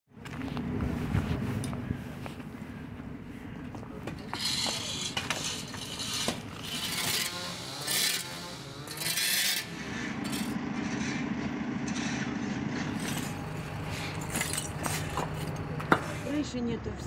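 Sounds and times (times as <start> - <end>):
heavy machinery diesel engines: 0.2 - 17.0
bricks and debris clattering: 10.2 - 10.6, 12.8 - 16.3.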